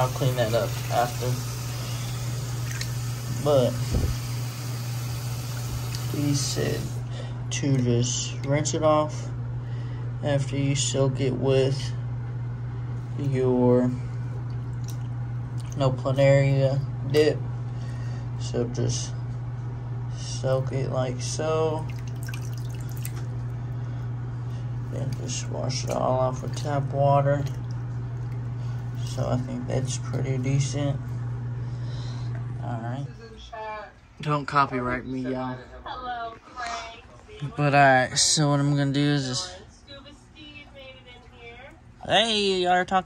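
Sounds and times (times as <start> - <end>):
steady low hum: 0.0 - 43.0
water sloshing in plastic tub: 2.0 - 3.0, 14.4 - 16.0, 21.8 - 23.5, 24.8 - 31.2
plants splashing in water: 21.9 - 23.3, 25.1 - 28.4.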